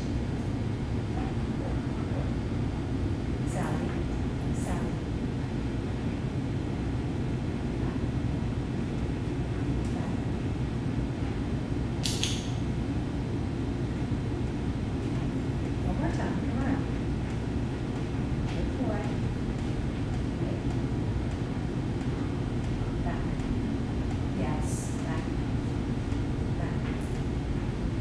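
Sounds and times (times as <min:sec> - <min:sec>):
low room rumble: 0:00.0 - 0:28.0.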